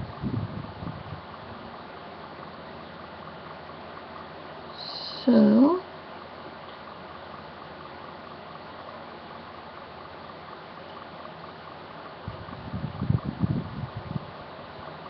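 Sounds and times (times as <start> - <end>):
electric fan whooshing: 0.0 - 15.0.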